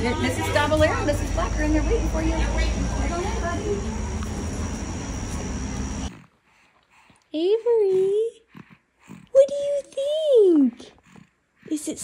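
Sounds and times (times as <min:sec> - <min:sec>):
thin high whine: 0:00.4 - 0:06.2.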